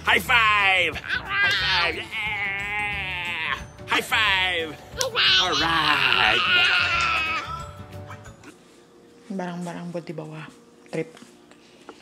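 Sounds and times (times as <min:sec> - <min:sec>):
child squealing excitedly: 0:01.0 - 0:03.6, 0:05.0 - 0:07.7.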